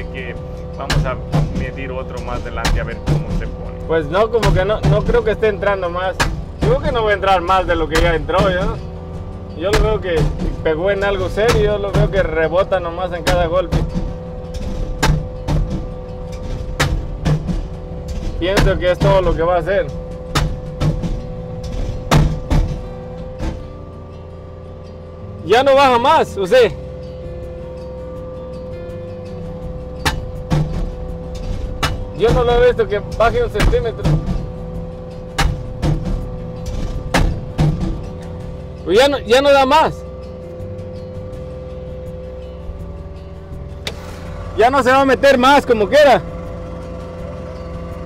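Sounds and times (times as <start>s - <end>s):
loader engine hum: 0.0s - 48.0s
post driver pounding steel post: 0.9s - 3.6s, 13.2s - 19.4s, 20.0s - 23.7s, 30.0s - 38.4s.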